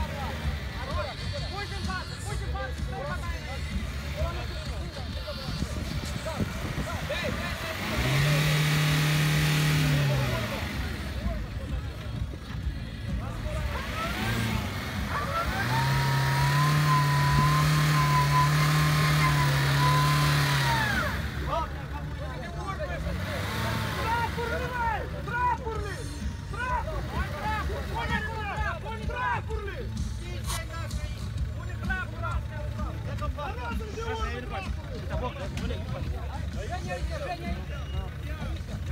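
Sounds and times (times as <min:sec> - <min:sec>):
crowd voices: 0:00.0 - 0:38.9
car engine revving hard: 0:05.6 - 0:11.8, 0:13.2 - 0:25.1.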